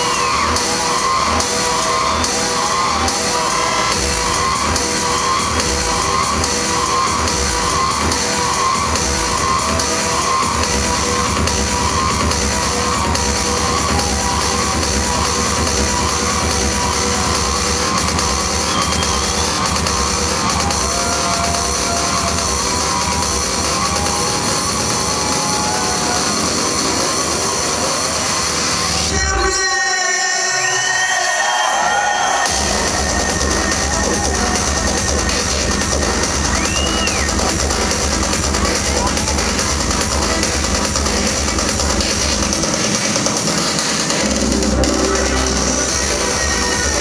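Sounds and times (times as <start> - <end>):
loud distorted trance music: 0.0 - 47.0
loud psytrance over sound system: 0.0 - 47.0.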